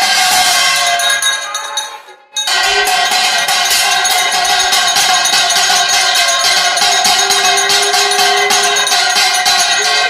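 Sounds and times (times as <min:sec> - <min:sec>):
metal bells ringing rapidly: 0:00.0 - 0:10.0.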